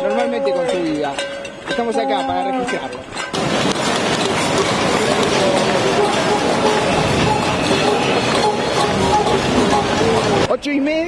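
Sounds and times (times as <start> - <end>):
people banging pots and pans: 0.0 - 10.5
crowd voices: 3.4 - 10.5.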